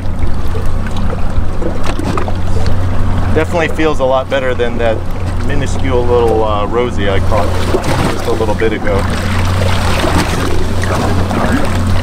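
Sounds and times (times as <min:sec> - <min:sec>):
outboard motor idling: 0:00.0 - 0:12.0
water wash: 0:00.0 - 0:12.0.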